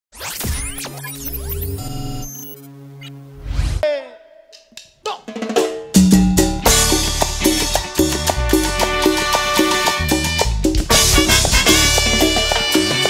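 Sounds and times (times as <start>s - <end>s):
electronic jingle with sweeps: 0.2s - 3.8s
cumbia band music: 3.8s - 13.0s.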